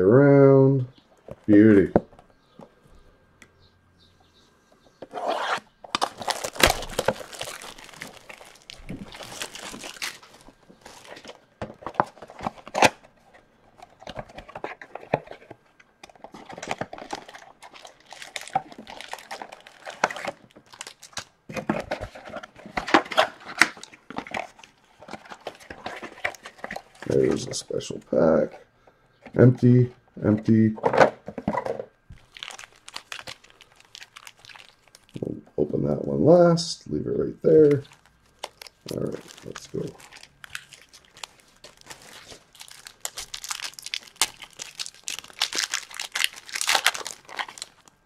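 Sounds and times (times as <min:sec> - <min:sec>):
plastic wrap crinkling and tearing: 0:05.9 - 0:13.0, 0:16.2 - 0:27.3, 0:32.1 - 0:35.3, 0:37.6 - 0:48.0.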